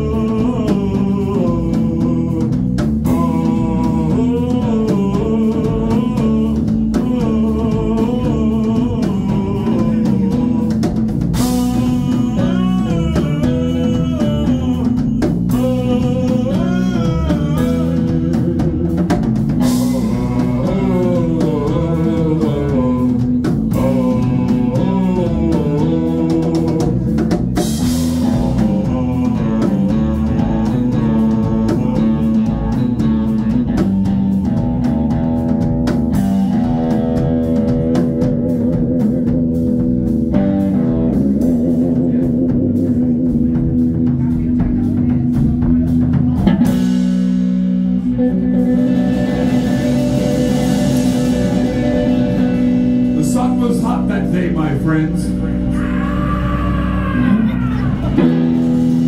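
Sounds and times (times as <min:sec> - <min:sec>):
drum kit: 0:00.0 - 0:59.0
electric bass guitar: 0:00.0 - 0:59.0
electric guitar: 0:00.0 - 0:59.0.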